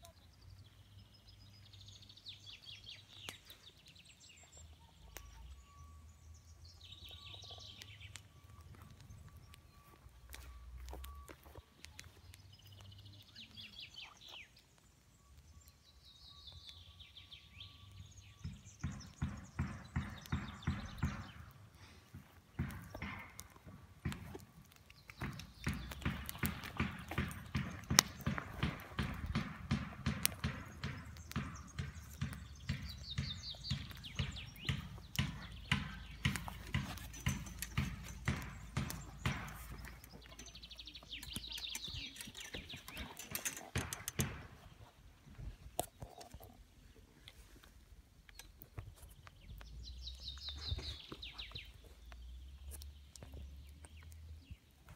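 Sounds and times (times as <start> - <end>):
birds singing: 0.0 - 54.9
regular footsteps: 6.4 - 15.8, 17.8 - 54.9.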